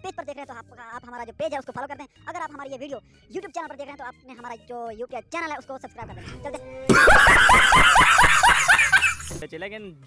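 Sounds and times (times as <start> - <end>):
man laughing loudly: 6.7 - 9.4.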